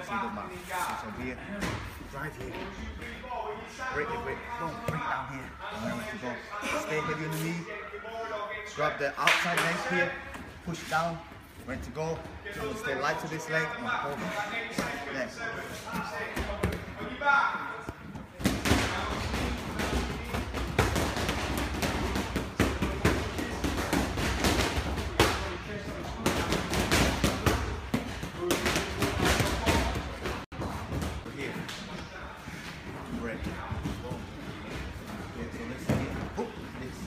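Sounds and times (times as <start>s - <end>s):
muffled voices: 0.0s - 37.0s.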